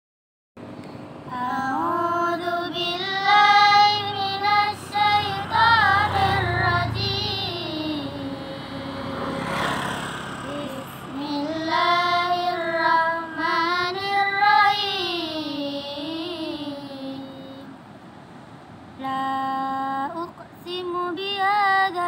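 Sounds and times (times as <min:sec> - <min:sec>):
girl chanting a recitation: 0:10.5 - 0:17.7.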